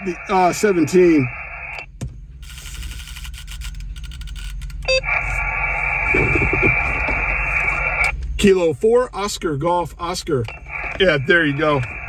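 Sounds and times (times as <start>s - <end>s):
radio static hissing and crackling: 0.0s - 1.8s, 5.0s - 8.1s, 10.6s - 12.0s
short radio beep: 4.8s - 8.0s.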